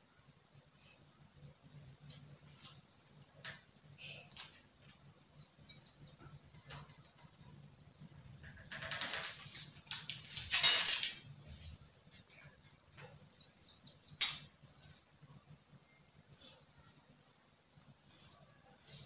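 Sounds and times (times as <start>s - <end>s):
small bird chirping: 4.0s - 8.1s, 12.1s - 14.4s
rustling handling noise: 8.9s - 12.1s, 17.9s - 19.0s.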